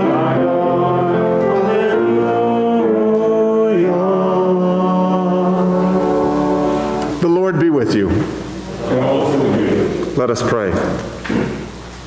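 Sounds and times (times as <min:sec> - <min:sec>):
choir holding a note: 0:00.0 - 0:07.4.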